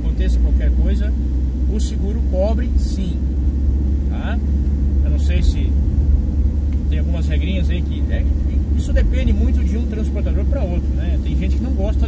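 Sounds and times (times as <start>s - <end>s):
van engine and road noise: 0.0s - 12.0s.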